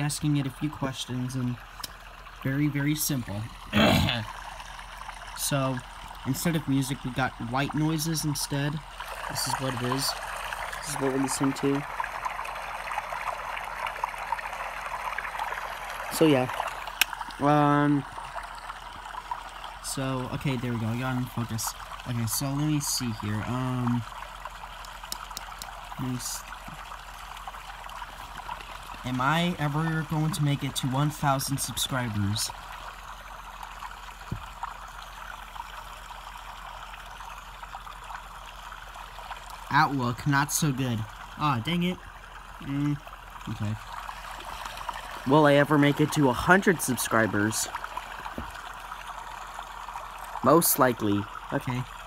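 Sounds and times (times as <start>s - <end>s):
water trickling with small drips: 0.0s - 52.0s.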